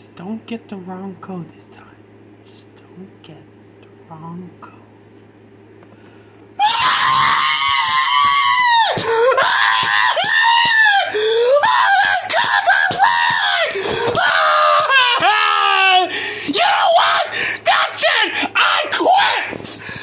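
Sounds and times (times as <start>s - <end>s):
person screaming: 6.6s - 20.0s.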